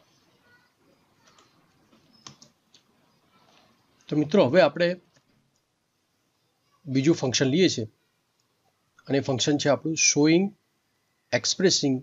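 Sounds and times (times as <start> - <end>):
faint computer keyboard clicks: 1.2 - 2.9.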